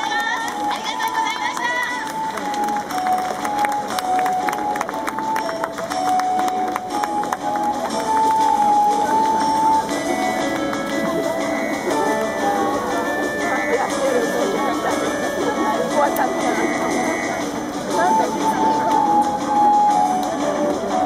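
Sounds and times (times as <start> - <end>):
crowd noise: 0.0 - 21.0.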